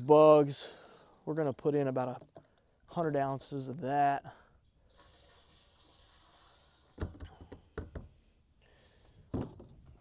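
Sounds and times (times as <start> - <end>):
plastic jugs knocking: 7.0 - 8.1, 9.3 - 9.8.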